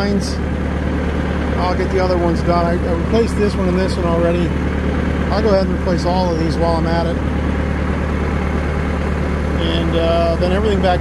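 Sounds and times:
backhoe engine idling: 0.0 - 11.0.

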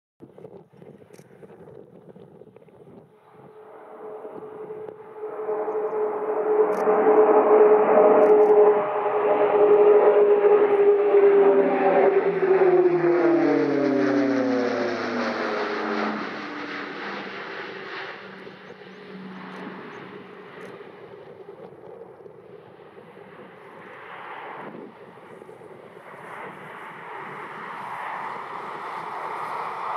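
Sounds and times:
distant aircraft rumble: 0.2 - 29.9
propeller aircraft passing overhead: 0.8 - 29.9.

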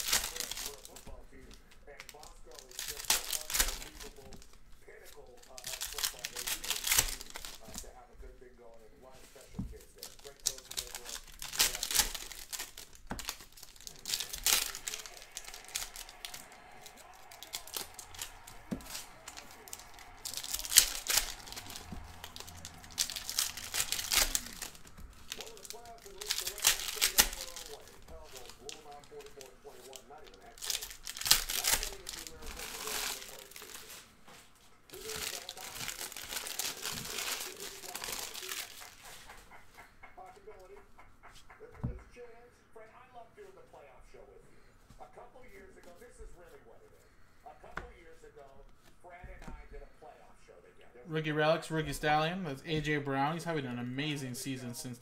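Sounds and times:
card wrappers crinkling and tearing: 0.0 - 34.2, 34.8 - 39.9.

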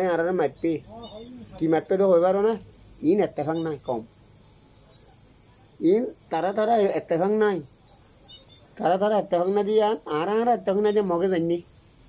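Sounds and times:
crickets trilling: 0.0 - 12.0
man's voice: 5.8 - 7.7, 8.8 - 11.6.

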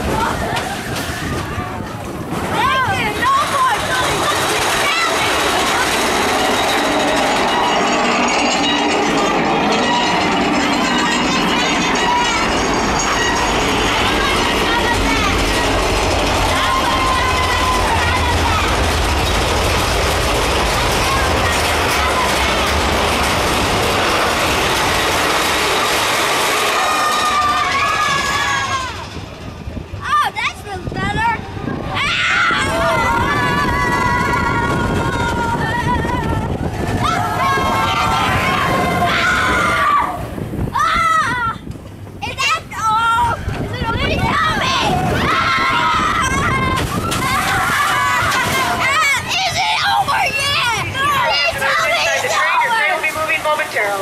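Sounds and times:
riders shouting and cheering: 0.0 - 29.2, 30.0 - 54.0
roller coaster rattling on track: 0.0 - 54.0.

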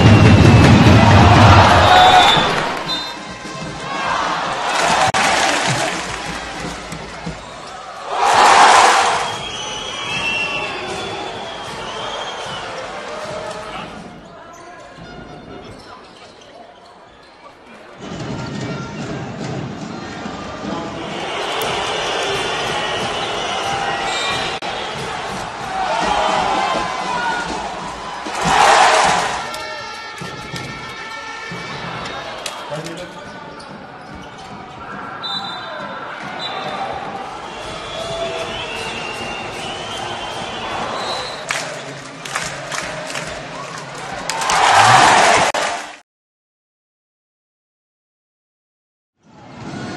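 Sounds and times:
crowd voices and shouts: 0.0 - 46.0
sneaker squeaks: 7.2 - 7.7, 14.2 - 17.7, 33.0 - 36.8.

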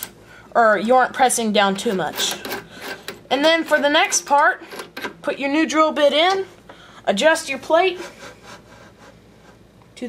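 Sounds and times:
rubbing and scraping handling noise: 1.6 - 5.3, 7.3 - 9.9.

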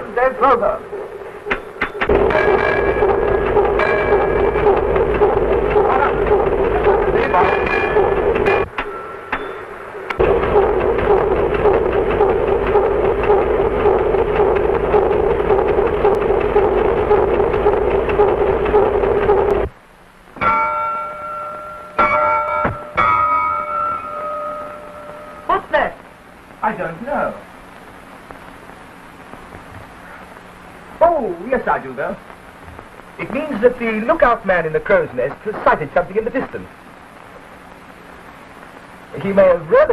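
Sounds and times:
loud rough din: 0.0 - 27.8
held tones: 0.9 - 19.7.

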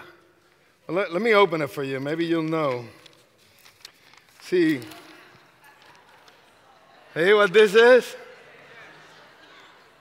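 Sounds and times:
paper map rustling: 2.2 - 6.5.

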